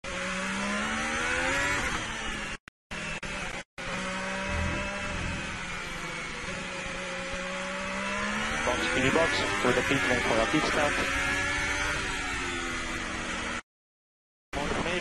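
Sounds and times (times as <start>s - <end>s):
racing car engine accelerating: 3.8s - 13.6s.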